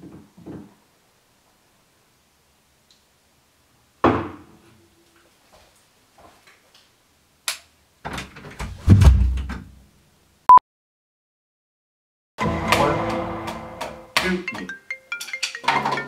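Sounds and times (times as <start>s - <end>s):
door banging shut: 8.1s - 9.7s.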